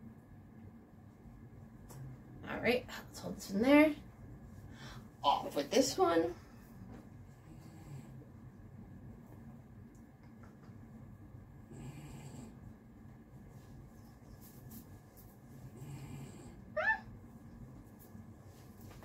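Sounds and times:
faint steady hum: 0.0 - 19.0
soft rustles: 13.4 - 15.7, 17.6 - 19.0.

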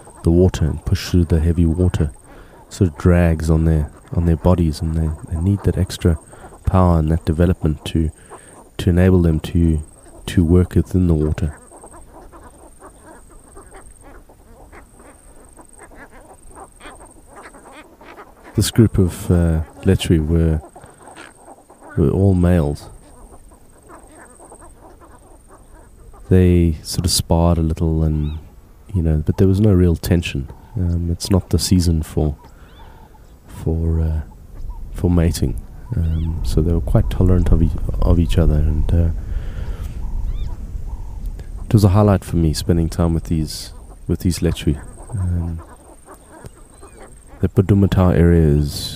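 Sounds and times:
chorus of animal calls: 0.0 - 48.9
low steady background rumble: 0.0 - 48.9.

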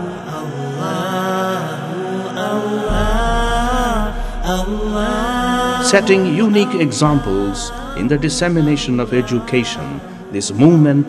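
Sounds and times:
person chanting: 0.0 - 11.0
low steady drone: 2.9 - 10.8.

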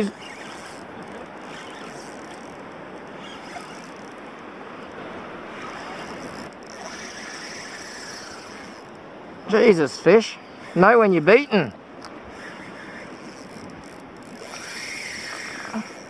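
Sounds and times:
water noise: 0.0 - 16.0
wind: 0.0 - 16.0.

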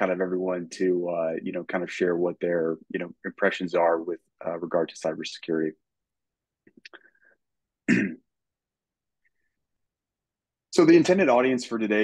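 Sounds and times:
man clearing throat: 7.8 - 8.3.

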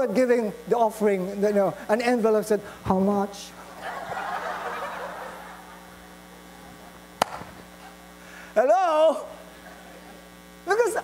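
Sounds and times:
electrical mains hum: 0.0 - 11.0
laughter: 3.7 - 6.0.

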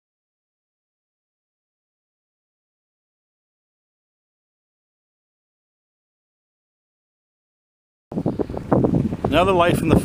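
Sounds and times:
wind buffeting microphone: 8.1 - 10.0.

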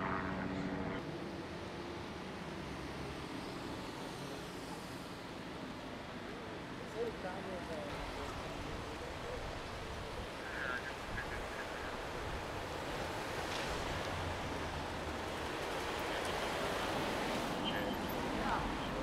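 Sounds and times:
traffic rushing: 0.0 - 19.0.

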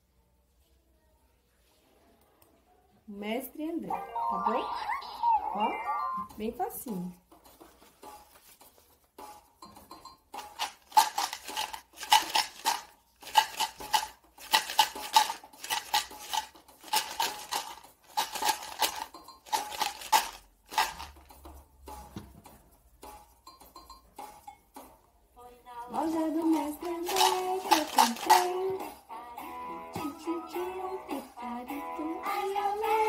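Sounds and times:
pasta bottle shaker rattling: 7.2 - 24.8, 25.9 - 29.0.

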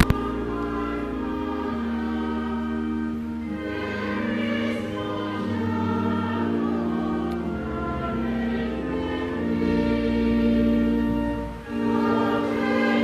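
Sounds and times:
choir singing a slow hymn: 0.0 - 13.0.

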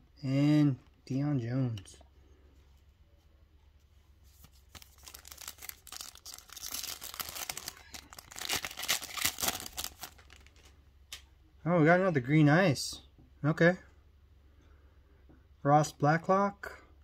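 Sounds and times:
wrapper tearing and crinkling: 4.6 - 10.7.

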